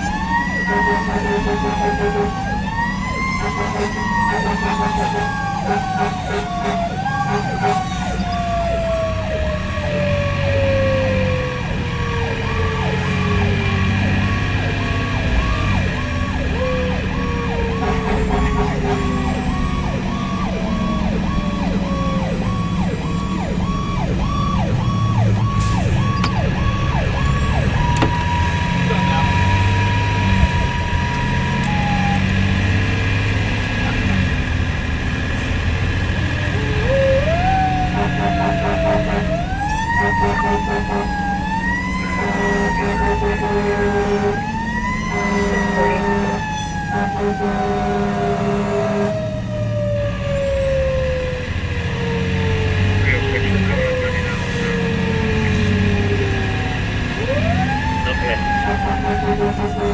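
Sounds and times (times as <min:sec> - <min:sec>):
diesel engine: 0:00.0 - 0:59.9
fire engine siren: 0:00.0 - 0:59.9
road noise: 0:00.0 - 0:59.9.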